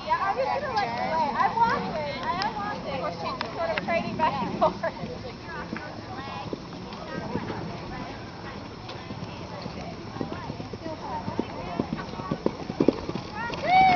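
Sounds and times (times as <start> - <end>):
horse hoofbeats on sand: 1.0 - 13.9.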